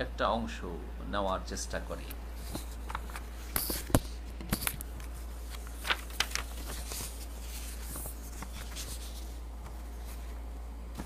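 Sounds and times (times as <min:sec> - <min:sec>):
steady low hum: 0:00.0 - 0:11.0
paper rustling and scratching: 0:02.4 - 0:11.0.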